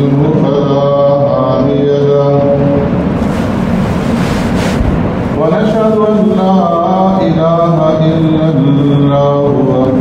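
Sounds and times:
man chanting: 0:00.0 - 0:02.9, 0:05.4 - 0:10.0
rushing noise: 0:02.6 - 0:07.4.

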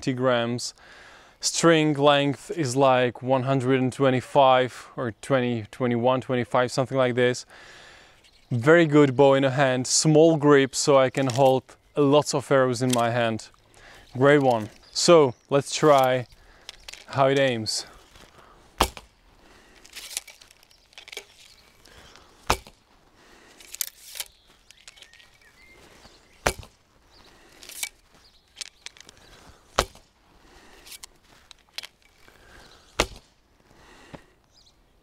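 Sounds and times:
soft rustles: 0:12.8 - 0:34.3
arrow striking straw target: 0:18.8 - 0:19.1, 0:22.4 - 0:22.8, 0:26.4 - 0:26.8, 0:29.7 - 0:30.1, 0:33.0 - 0:33.3.

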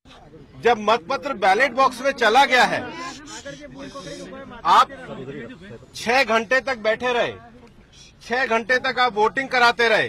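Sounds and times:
background voices talking: 0:00.1 - 0:06.0
man speaking: 0:00.6 - 0:07.5.

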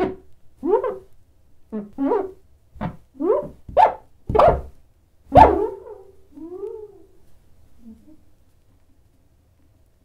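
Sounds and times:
cartoon squeaks: 0:00.0 - 0:01.1, 0:01.7 - 0:04.7.

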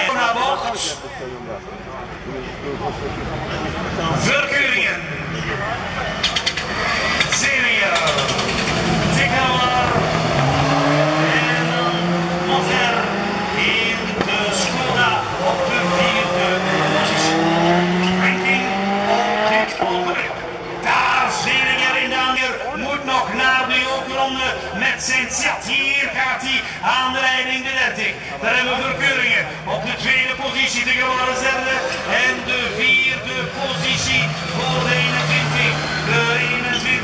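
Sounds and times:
engine and tyre noise: 0:00.0 - 0:37.0
race car engines revving: 0:00.0 - 0:37.0.

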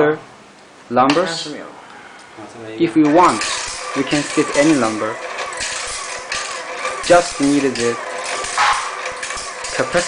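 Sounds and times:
screw counting machine rattling: 0:03.0 - 0:10.0.

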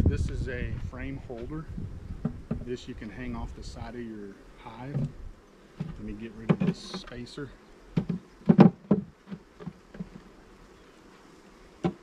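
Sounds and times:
honeybees buzzing: 0:00.0 - 0:12.0
hive equipment knocks: 0:05.8 - 0:07.2, 0:07.9 - 0:10.2, 0:11.8 - 0:12.0.

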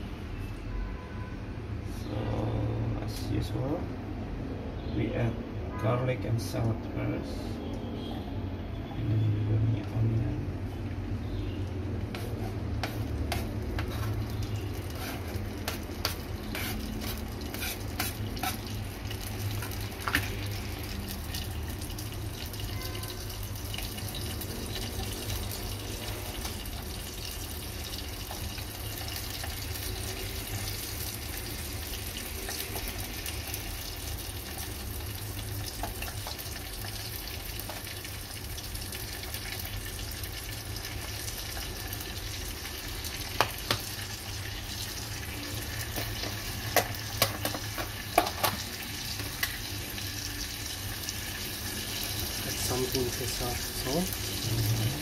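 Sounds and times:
vegetables sizzling in oil: 0:11.3 - 0:55.0.

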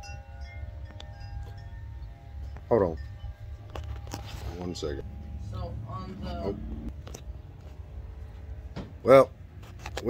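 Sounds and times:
steady ringing tones: 0:00.0 - 0:06.9
continuous low rumble: 0:00.0 - 0:10.0.

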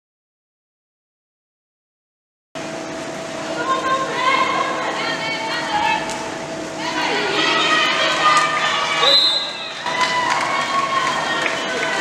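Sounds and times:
voices calling and shouting: 0:03.5 - 0:12.0.

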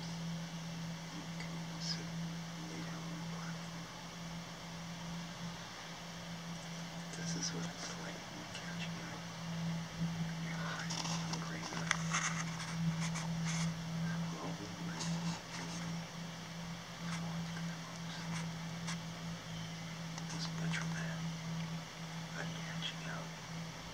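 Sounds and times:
steady low hum: 0:00.0 - 0:23.9
hushed whispering: 0:01.0 - 0:03.9, 0:06.7 - 0:09.4, 0:10.1 - 0:16.0, 0:16.9 - 0:19.1, 0:20.2 - 0:21.4, 0:22.3 - 0:23.4.

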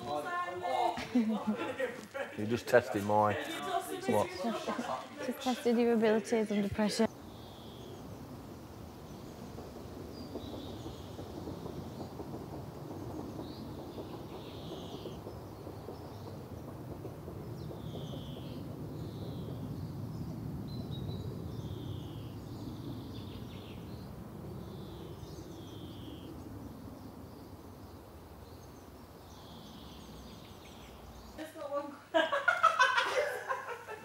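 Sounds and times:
low outdoor rumble: 0:00.0 - 0:31.9
bird chirps: 0:17.5 - 0:26.6.

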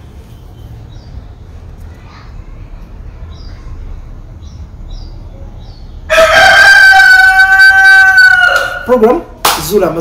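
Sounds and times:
rooster crowing: 0:06.1 - 0:08.9.

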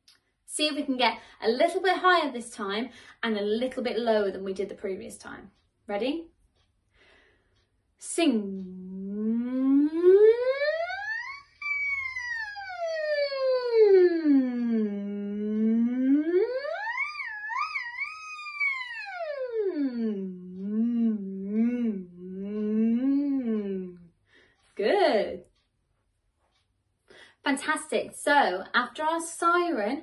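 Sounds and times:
woman humming a vocal siren: 0:08.5 - 0:24.1.

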